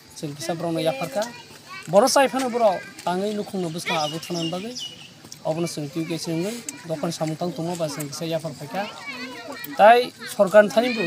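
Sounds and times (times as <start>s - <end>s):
man talking: 1.9s - 4.8s, 9.8s - 11.0s.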